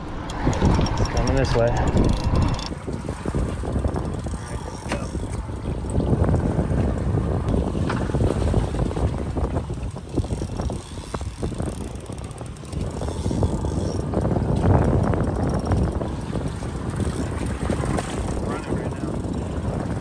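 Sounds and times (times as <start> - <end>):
boat noise: 0.0 - 20.0
wind buffeting microphone: 0.0 - 20.0.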